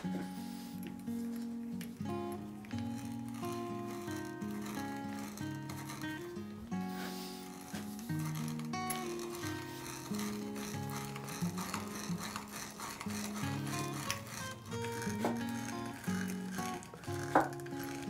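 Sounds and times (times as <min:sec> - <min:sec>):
background music with sustained notes: 0:00.0 - 0:18.0
auger bit rasping into wood: 0:02.2 - 0:18.0.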